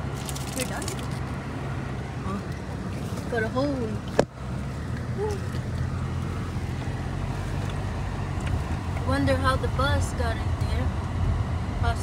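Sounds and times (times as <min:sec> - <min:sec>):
car rumbling on dirt road: 0:00.0 - 0:12.0.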